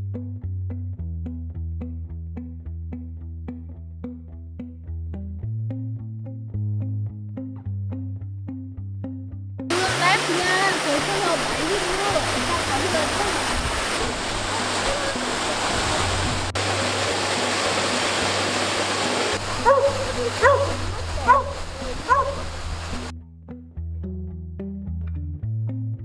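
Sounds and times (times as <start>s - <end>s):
waterfall rushing into pool: 9.7s - 23.1s
dog whining: 19.6s - 22.4s.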